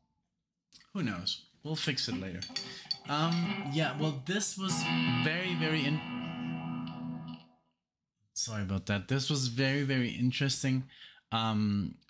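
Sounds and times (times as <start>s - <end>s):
guitar chord ringing: 3.0s - 7.6s.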